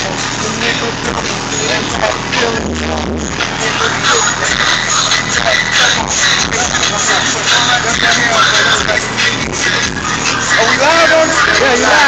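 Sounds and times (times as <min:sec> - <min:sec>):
hip-hop beat through car stereo: 0:00.0 - 0:12.0
men talking: 0:10.5 - 0:12.0.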